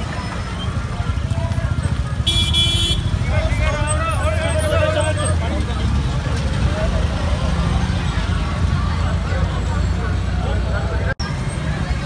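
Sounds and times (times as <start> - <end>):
street traffic: 0.0 - 12.0
vehicle horn toot: 2.2 - 3.2.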